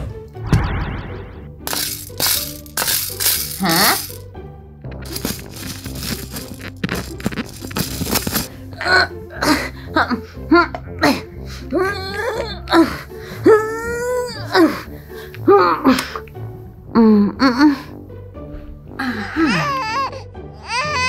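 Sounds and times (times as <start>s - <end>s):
background music: 0.0s - 21.0s
plastic beads rattling in tray: 1.7s - 4.2s, 5.0s - 8.5s.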